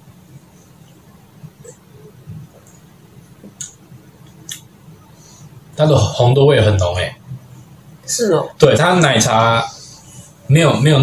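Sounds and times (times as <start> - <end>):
low room hum: 0.0 - 11.0
lips smacking: 3.4 - 4.7.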